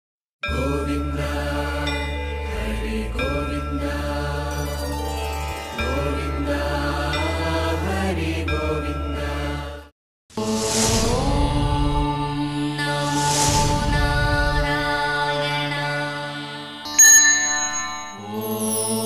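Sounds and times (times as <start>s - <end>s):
chanted mantra: 0.5s - 4.6s, 10.4s - 17.0s, 18.0s - 19.0s.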